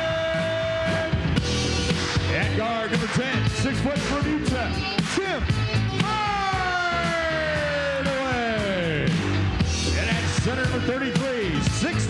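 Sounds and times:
loud rock music: 0.0s - 12.0s
announcer long drawn-out shout: 6.0s - 9.1s.

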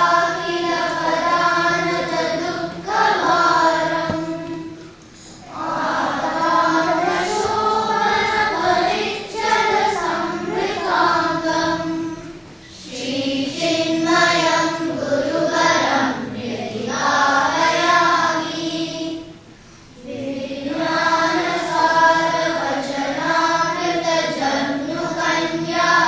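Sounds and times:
children chanting in unison: 0.0s - 26.0s.

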